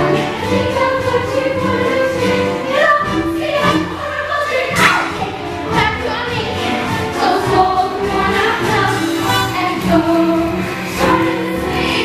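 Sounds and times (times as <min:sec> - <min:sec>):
instrumental accompaniment: 0:00.0 - 0:12.0
women singing in chorus: 0:00.4 - 0:05.2, 0:07.1 - 0:12.0.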